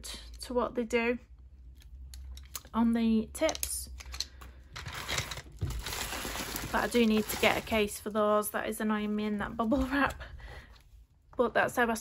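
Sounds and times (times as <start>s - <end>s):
wooden pencils clicking together: 1.8s - 2.8s, 3.4s - 4.5s
bubble wrap crinkling: 4.9s - 8.1s.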